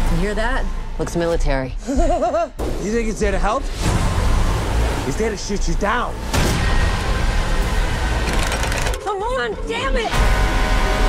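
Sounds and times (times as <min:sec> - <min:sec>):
fast rattle of clicks: 0:08.2 - 0:09.0.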